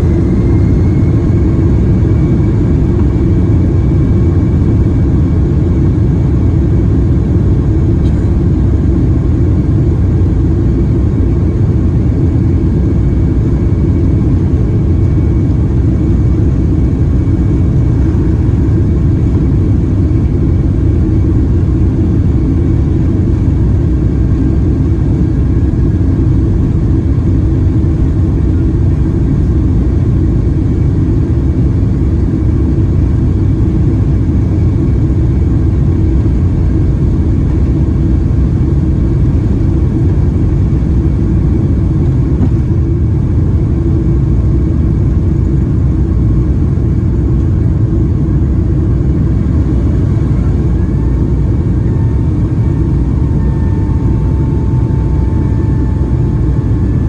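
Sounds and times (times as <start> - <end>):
high engine whine: 0.0 - 57.0
jet engines low rumble: 0.0 - 57.0.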